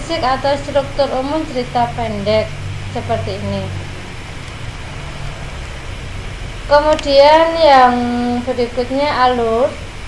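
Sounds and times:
low hum: 0.0s - 9.2s
even hiss: 0.0s - 10.0s.

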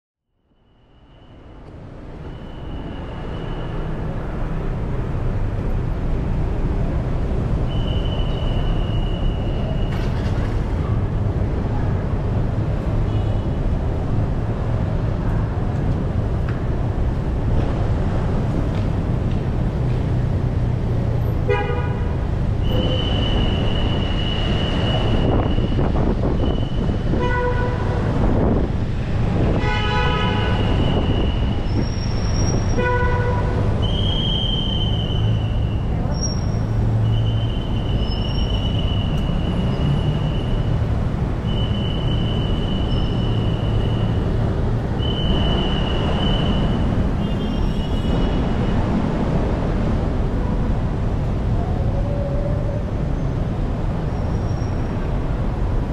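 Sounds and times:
idling and passing traffic: 0.3s - 55.9s
shrill whistle blasts: 7.7s - 10.0s, 22.7s - 25.8s, 30.6s - 32.7s, 33.8s - 40.7s, 41.4s - 44.2s, 45.0s - 48.3s
car horn toots: 21.5s - 23.4s, 29.5s - 31.2s.

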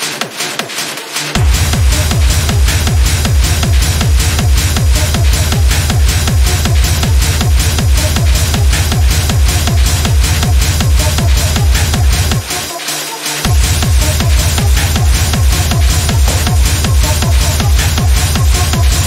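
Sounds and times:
techno music: 0.0s - 19.0s
deep kick drum: 1.4s - 12.6s, 13.5s - 19.0s.

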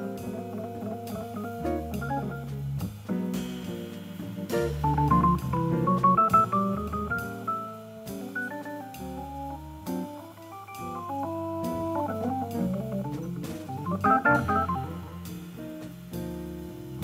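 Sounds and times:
organ playing jazz blues: 0.0s - 17.0s.

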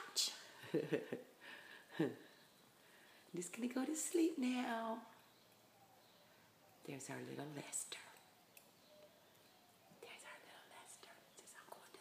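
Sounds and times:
faint whispering voice: 6.6s - 8.4s, 9.6s - 12.0s.

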